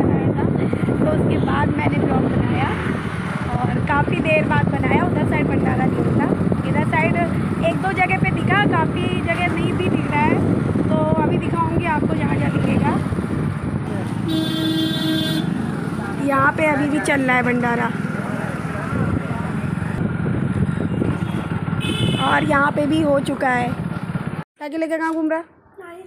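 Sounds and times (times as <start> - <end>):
street traffic: 0.0 - 26.0
vehicle horn honk: 14.2 - 15.6, 20.9 - 22.5.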